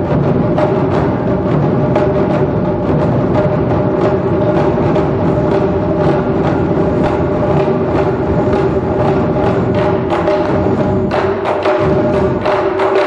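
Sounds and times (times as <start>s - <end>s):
large barrel drums: 0.0s - 13.0s
small high-pitched drums: 0.0s - 13.0s.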